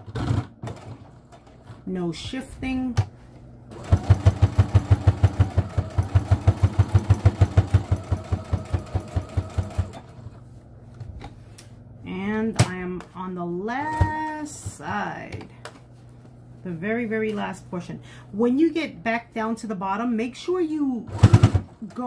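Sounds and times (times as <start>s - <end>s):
sewing machine stitching: 0.0s - 1.8s, 3.7s - 10.4s, 21.1s - 22.0s.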